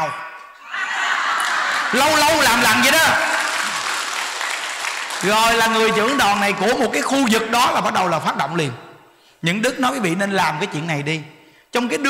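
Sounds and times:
large audience applauding: 0:00.8 - 0:06.4.

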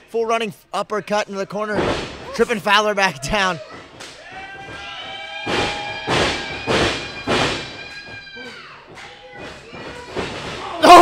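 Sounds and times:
heavy thuds in wrestling ring: 0:05.4 - 0:07.8.

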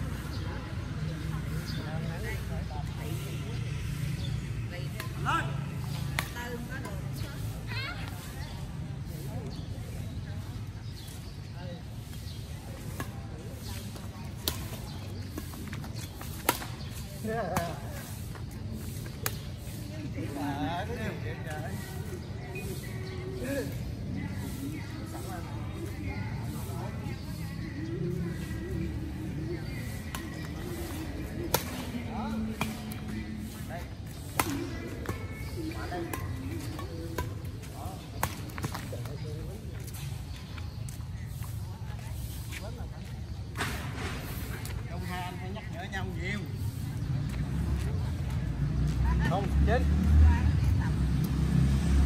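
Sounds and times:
low rumble of street traffic: 0:00.0 - 0:52.0
players' voices: 0:00.0 - 0:52.0
rackets striking shuttlecock: 0:29.9 - 0:33.1, 0:34.1 - 0:39.2.

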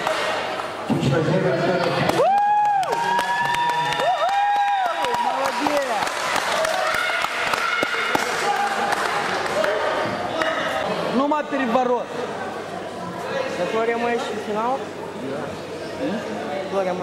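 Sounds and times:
voices shouting in a sports hall: 0:01.6 - 0:16.7.

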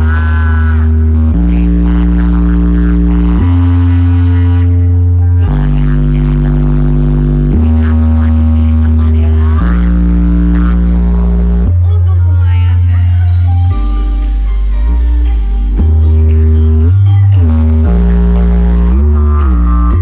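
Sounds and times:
deep bass notes: 0:00.0 - 0:20.0
loud dance music: 0:00.0 - 0:20.0.

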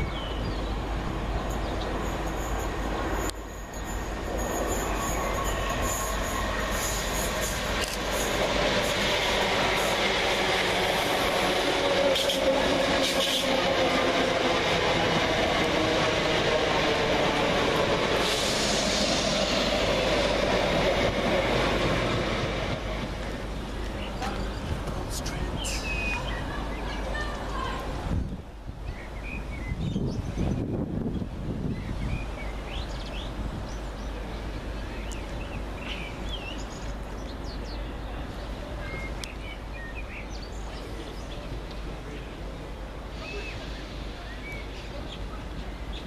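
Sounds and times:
electric train arriving: 0:00.0 - 0:46.0.

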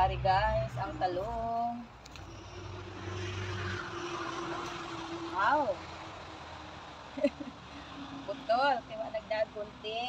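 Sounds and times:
vehicle engine passing: 0:00.0 - 0:09.9.

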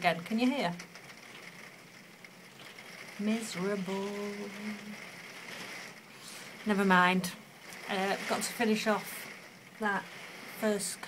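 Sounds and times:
steady rain falling: 0:00.0 - 0:11.0
person speaking: 0:03.2 - 0:05.0, 0:06.2 - 0:11.0.

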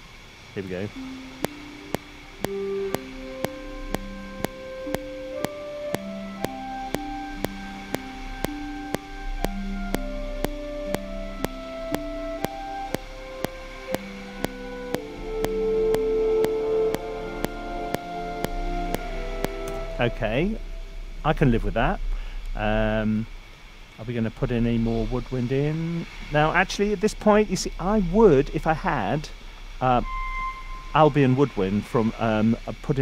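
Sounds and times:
orchestral instruments playing chords: 0:00.6 - 0:21.4
metronome clicking: 0:01.0 - 0:20.2.

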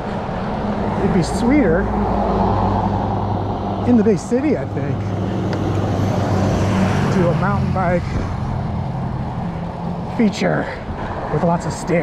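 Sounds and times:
pickup truck driving past: 0:00.0 - 0:10.1
road noise: 0:00.0 - 0:12.0.

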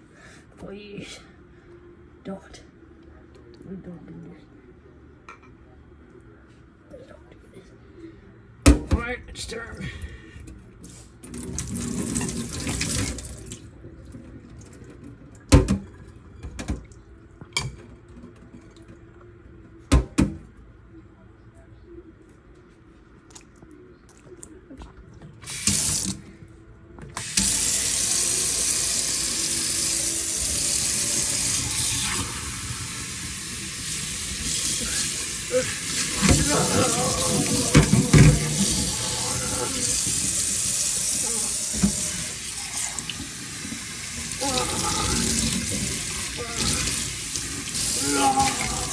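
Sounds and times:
faucet water running into sink: 0:11.3 - 0:13.6, 0:25.4 - 0:26.2, 0:27.2 - 0:48.9.

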